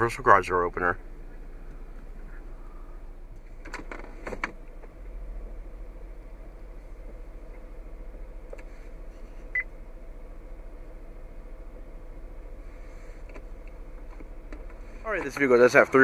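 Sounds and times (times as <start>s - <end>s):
low car cabin hum: 0.0s - 16.0s.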